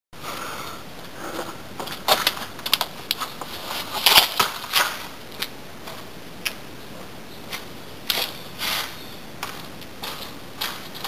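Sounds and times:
steady hiss: 0.2s - 11.0s.

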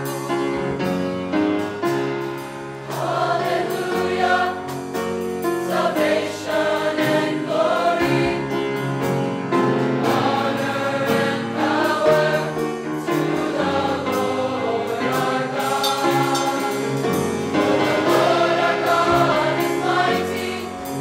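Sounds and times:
drum kit beat with cymbals: 0.0s - 21.0s
choir singing: 2.8s - 8.9s, 9.5s - 21.0s.

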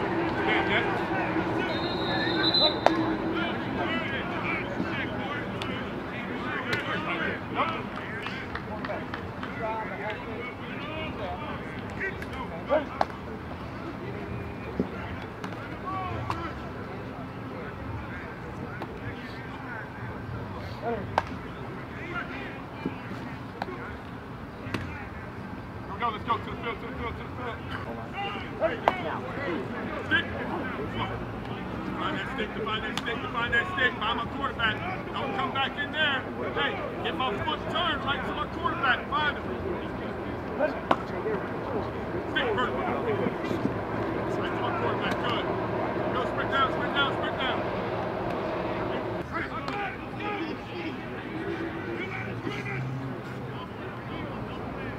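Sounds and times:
players and coaches shouting: 0.0s - 8.5s, 14.4s - 16.7s, 25.9s - 31.2s, 31.9s - 54.9s
distant voices calling out: 0.0s - 8.6s, 33.6s - 54.8s
steady low hum: 39.6s - 49.3s.

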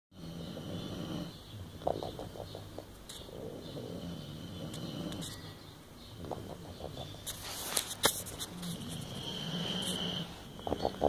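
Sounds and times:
dog snoring: 0.2s - 2.1s, 3.3s - 5.4s, 8.8s - 11.0s.

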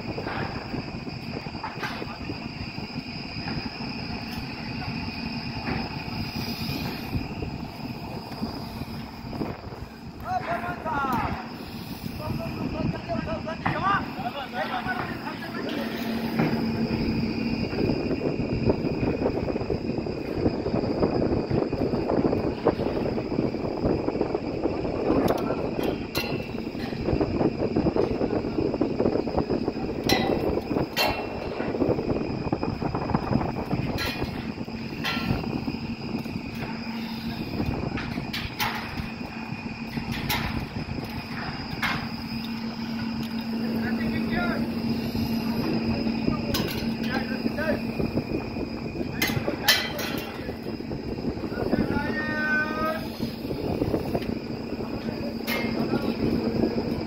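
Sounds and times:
steady machine hum: 0.0s - 57.0s
wind: 0.0s - 57.0s
sharp metal clanks: 30.0s - 31.5s, 49.2s - 50.4s.

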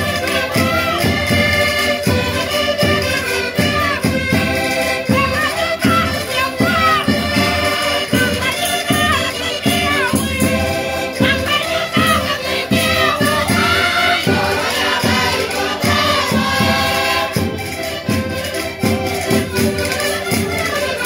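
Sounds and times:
crowd singing loudly: 0.0s - 18.4s
button accordions playing: 0.0s - 21.0s.

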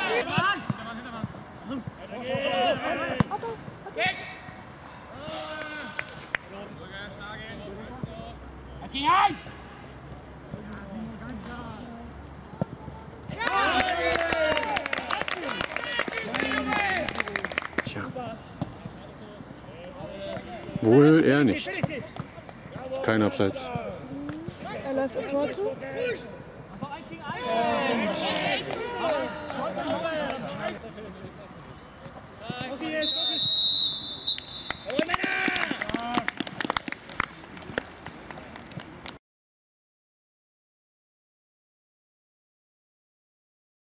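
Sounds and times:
people shouting and cheering: 0.0s - 0.6s, 13.3s - 17.1s, 27.3s - 30.4s, 34.8s - 36.2s
hand claps: 13.4s - 17.9s, 34.3s - 39.2s
referee's whistle blast: 32.9s - 35.0s.

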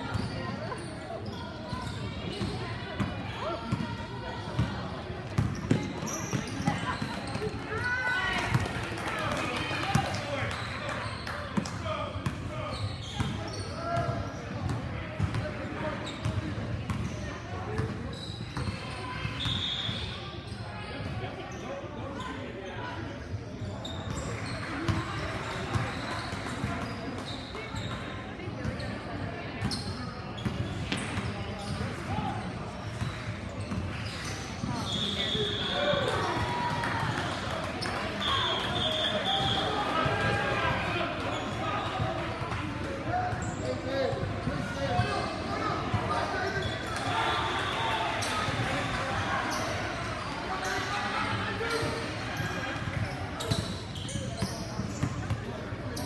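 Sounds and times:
players and spectators calling out: 0.0s - 29.9s, 33.5s - 56.0s
referee's whistle: 19.3s - 20.2s, 34.7s - 36.1s, 38.2s - 39.8s, 46.6s - 48.4s.

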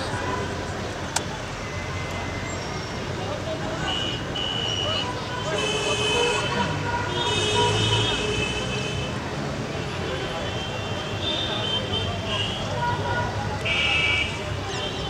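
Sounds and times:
people's voices: 0.0s - 15.0s
traffic noise: 0.0s - 15.0s
vehicle horns: 3.7s - 15.0s.

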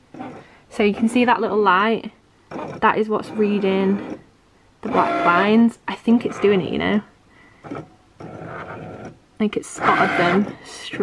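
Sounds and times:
cutting machine motor whirring: 2.5s - 4.2s, 4.8s - 5.6s, 6.2s - 6.7s, 7.6s - 11.0s.

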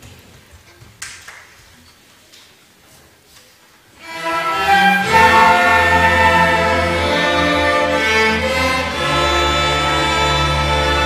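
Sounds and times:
low cello and bass notes: 4.0s - 11.0s
violins playing: 4.0s - 11.0s.

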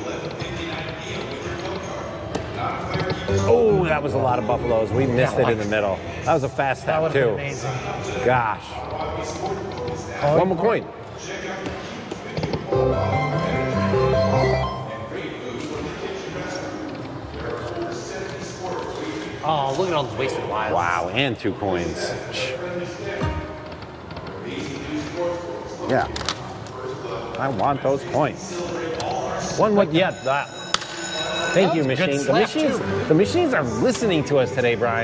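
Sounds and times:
casino background noise: 0.0s - 35.0s
slot machine electronic spin sounds: 12.7s - 15.2s.

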